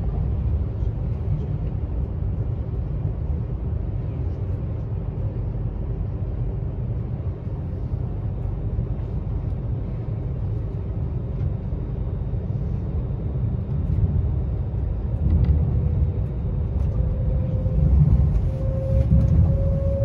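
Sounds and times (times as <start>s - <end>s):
train rumble inside carriage: 0.0s - 20.0s
faint whine rising in pitch: 15.2s - 20.0s.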